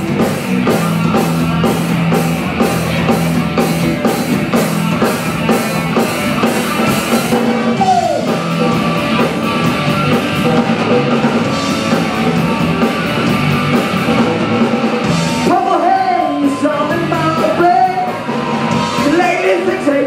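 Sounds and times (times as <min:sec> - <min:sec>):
bass guitar: 0:00.0 - 0:20.0
drum kit with cymbals: 0:00.0 - 0:20.0
electric guitars: 0:00.0 - 0:20.0.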